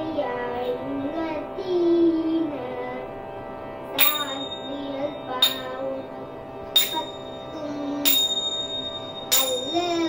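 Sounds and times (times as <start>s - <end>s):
held musical tones: 0.0s - 10.0s
small hand cymbals ringing: 4.0s - 10.0s.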